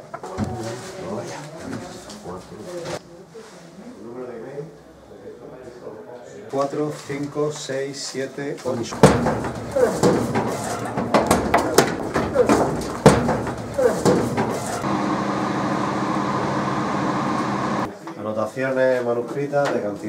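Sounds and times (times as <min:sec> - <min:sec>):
voices: 0:00.2 - 0:14.8
knocks and bangs: 0:08.8 - 0:14.8
steady machine hum: 0:13.4 - 0:17.9.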